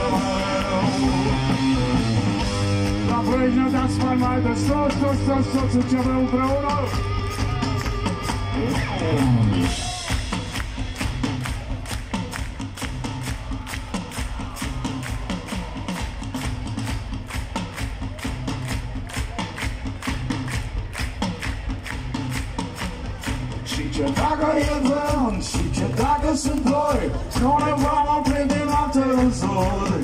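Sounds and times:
person singing: 0.0s - 1.8s, 23.6s - 30.0s
crowd clapping along: 0.0s - 30.0s
live rock band playing: 0.0s - 30.0s.

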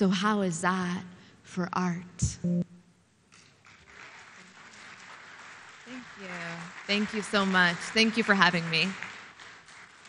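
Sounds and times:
faint audience applause: 3.3s - 10.0s.

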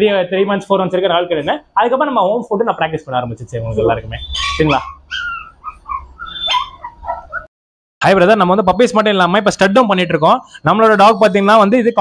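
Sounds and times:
puppies whimpering and yipping: 3.8s - 7.5s.

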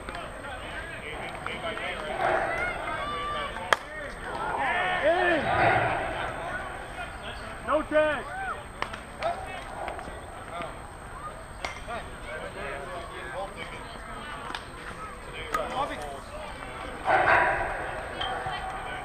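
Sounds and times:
players shouting: 0.0s - 19.0s.

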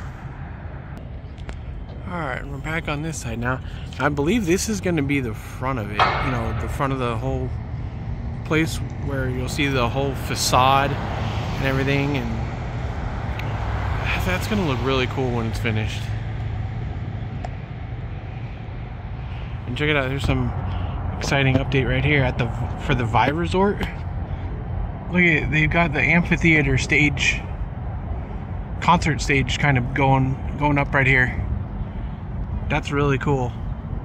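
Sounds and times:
low engine hum: 0.0s - 34.0s
low rumble with hiss: 0.0s - 34.0s
outdoor background noise: 0.0s - 34.0s.

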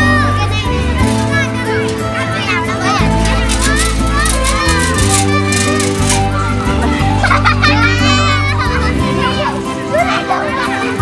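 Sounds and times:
background music with bass: 0.0s - 11.0s
children shouting at play: 0.0s - 11.0s.

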